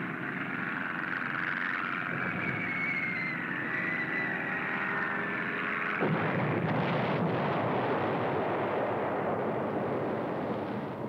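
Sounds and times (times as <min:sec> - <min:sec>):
propeller plane engine drone: 0:00.0 - 0:11.0.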